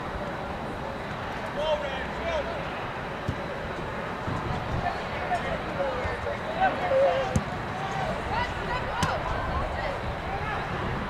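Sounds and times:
distant players shouting: 5.2s - 11.0s.

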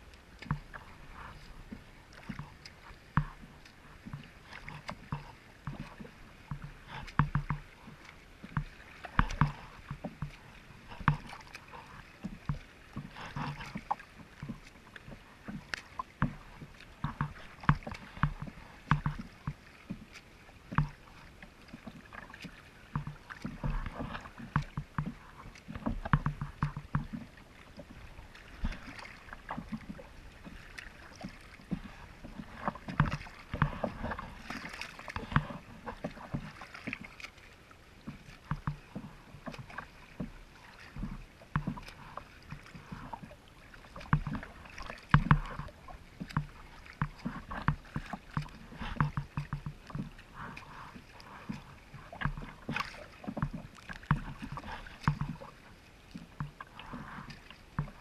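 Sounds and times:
water splashing against kayak hull: 0.0s - 58.0s.

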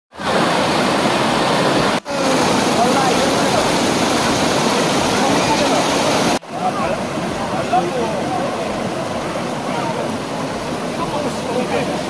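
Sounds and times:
stream water rushing over rocks: 0.1s - 12.0s.

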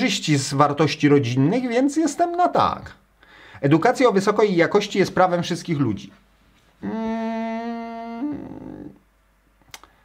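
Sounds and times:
man humming mmm: 6.8s - 9.1s
faint clicks: 9.6s - 10.0s.

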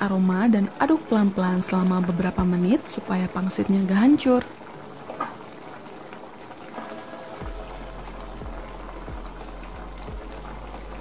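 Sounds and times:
broth bubbling: 0.0s - 11.0s.

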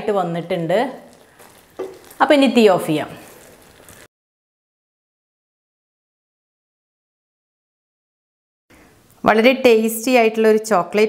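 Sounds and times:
person speaking: 1.8s - 3.4s.

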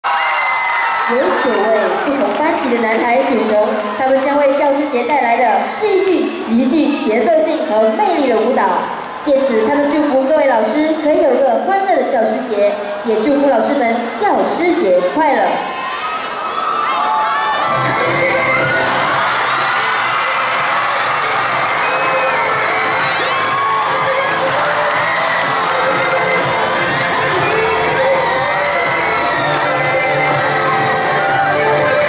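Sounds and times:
students shrieking and cheering: 0.0s - 5.0s, 14.5s - 32.0s
music with steady beat: 20.4s - 32.0s.

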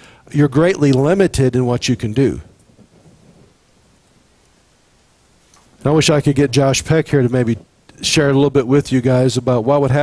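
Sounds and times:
low room hiss: 0.0s - 10.0s.

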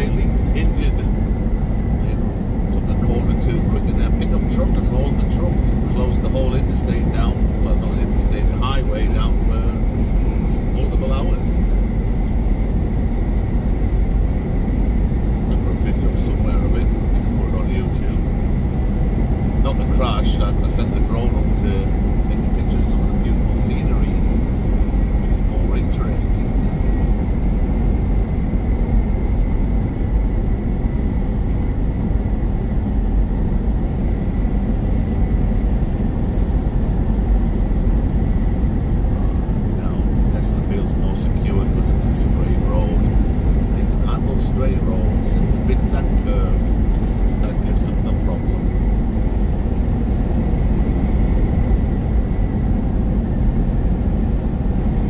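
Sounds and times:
faint steady whine: 0.0s - 55.0s
truck engine drone: 0.0s - 55.0s.

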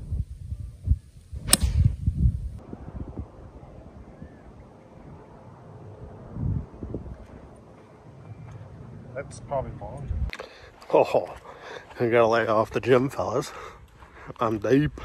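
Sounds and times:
wind buffeting microphone: 0.0s - 5.4s, 6.0s - 7.6s, 9.6s - 10.3s
golf club striking ball: 1.4s - 1.9s.

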